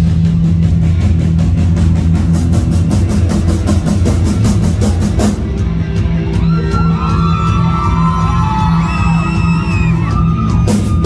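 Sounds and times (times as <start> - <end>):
fast steady drum beat: 0.0 - 11.0
heavy bass: 0.0 - 11.0.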